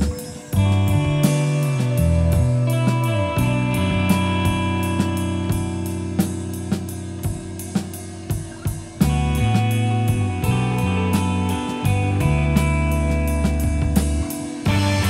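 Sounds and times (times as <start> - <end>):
drum kit beat with cymbals: 0.0 - 15.0
post-rock band music: 0.0 - 15.0.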